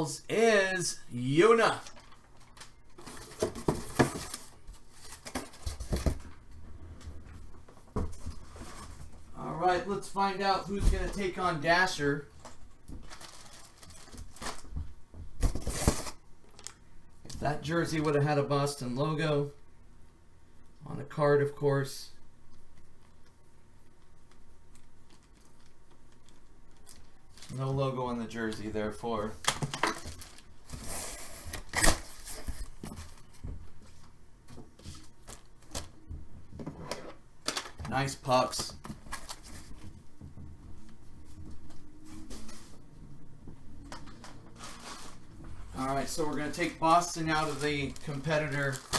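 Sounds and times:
cards and packaging rustling: 0:01.5 - 0:06.4, 0:12.4 - 0:14.8, 0:15.4 - 0:16.8, 0:29.4 - 0:34.1, 0:37.4 - 0:40.0, 0:44.1 - 0:48.9.

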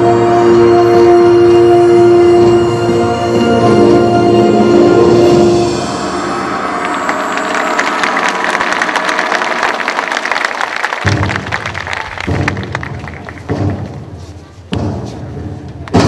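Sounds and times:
audience applauding: 0:06.1 - 0:14.0.

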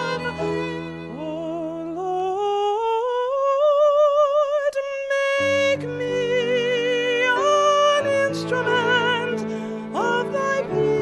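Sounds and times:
violin: 0:00.0 - 0:02.8, 0:05.2 - 0:11.0
piano: 0:00.0 - 0:11.0.

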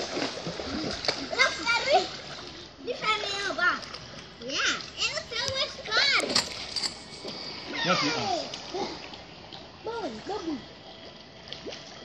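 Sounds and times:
pool water splashing: 0:00.0 - 0:12.0
children calling out: 0:07.7 - 0:09.0.

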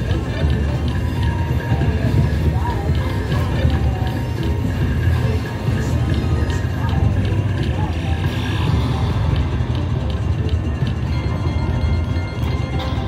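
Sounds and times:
electronic slot machine music: 0:00.0 - 0:13.0
low casino hum: 0:00.0 - 0:13.0.

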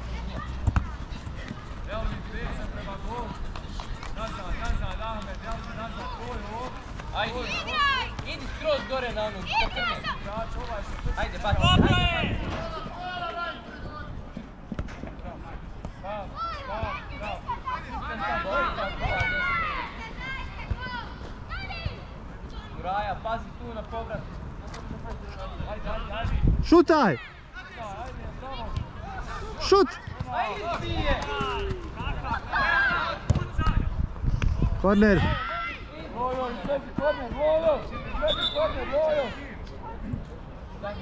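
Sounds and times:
children and adults shouting: 0:31.0 - 0:33.2.

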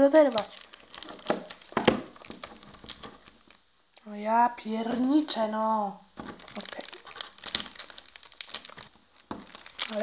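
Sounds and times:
plastic tape crinkling: 0:00.0 - 0:03.6, 0:06.2 - 0:10.0
sharp snaps and clicks: 0:00.1 - 0:00.6.

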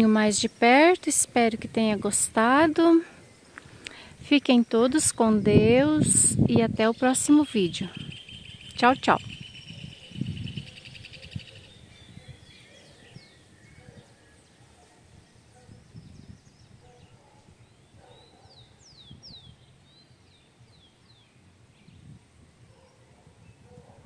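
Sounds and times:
bird trill: 0:06.8 - 0:14.6.

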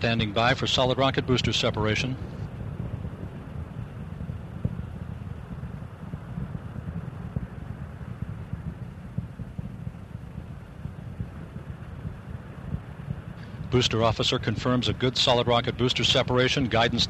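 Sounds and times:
rocket engines rumbling: 0:00.0 - 0:17.0.

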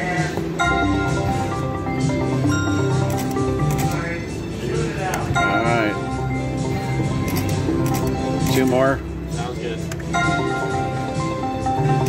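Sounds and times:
slot machine chimes and jingles: 0:00.6 - 0:03.6, 0:05.4 - 0:06.5, 0:10.1 - 0:11.2.

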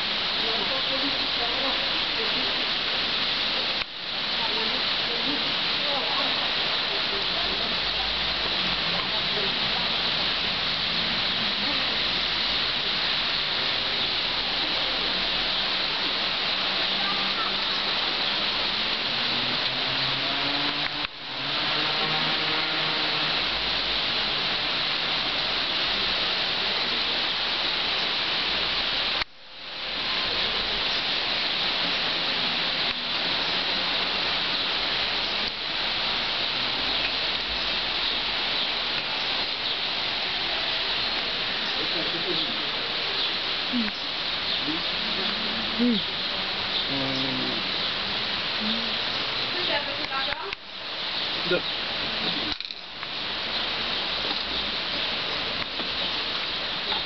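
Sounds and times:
light rain on wet pavement: 0:00.0 - 0:57.0.

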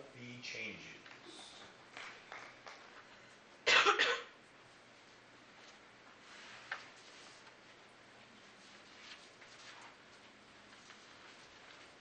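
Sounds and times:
person coughing: 0:03.7 - 0:04.4.

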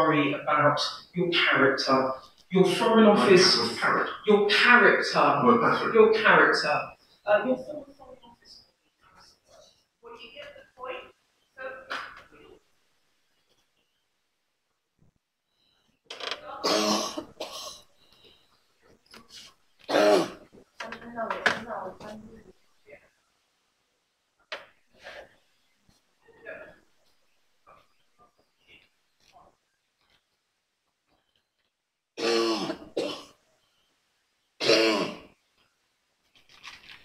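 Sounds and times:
person clearing throat: 0:16.6 - 0:17.8, 0:19.9 - 0:20.4, 0:32.2 - 0:33.4, 0:34.6 - 0:35.3
person coughing: 0:16.6 - 0:17.8, 0:32.2 - 0:33.4, 0:34.6 - 0:35.3.

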